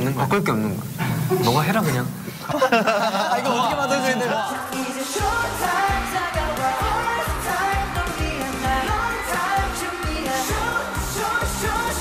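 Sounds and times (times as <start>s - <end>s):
pop song singing over driving beat: 3.5s - 12.0s.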